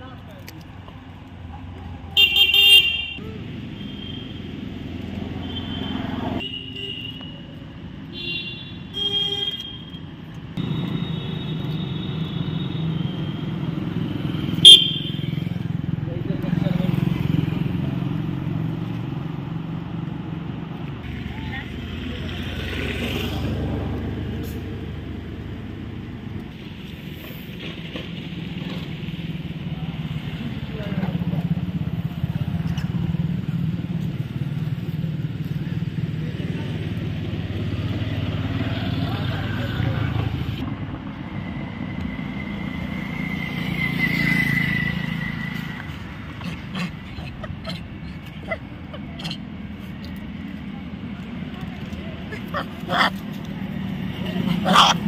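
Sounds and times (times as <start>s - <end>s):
traffic engines passing: 0.0s - 55.0s.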